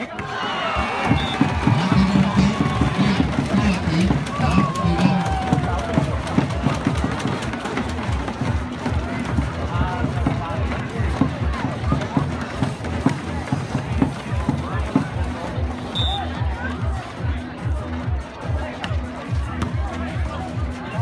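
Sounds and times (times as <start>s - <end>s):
crowd shouting and talking: 0.0s - 21.0s
pounding drum beat: 0.8s - 15.2s.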